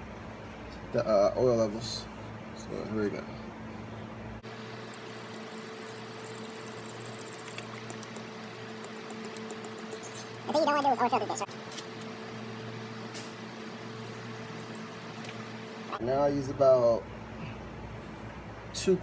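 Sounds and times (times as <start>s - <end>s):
steady low hum: 0.0s - 19.0s
oil pouring through funnel: 4.4s - 10.5s
person speaking: 9.1s - 11.5s.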